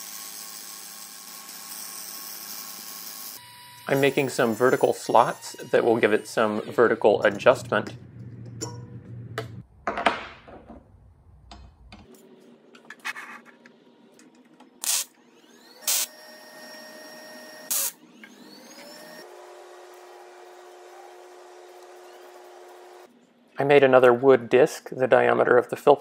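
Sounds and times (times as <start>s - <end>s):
power tool motor whine: 0.0s - 6.8s, 14.8s - 23.1s.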